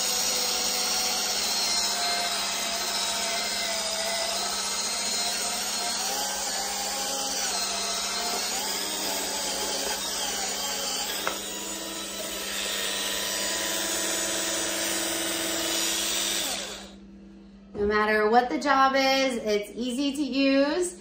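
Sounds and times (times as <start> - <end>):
spin scrubber motor whirring: 0.0 - 17.0.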